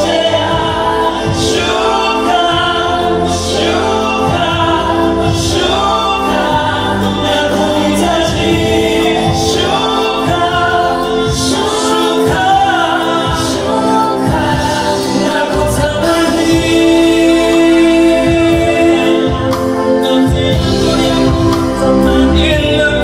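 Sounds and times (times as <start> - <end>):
choir singing gospel song: 0.0 - 23.0
man singing lead: 0.0 - 23.0.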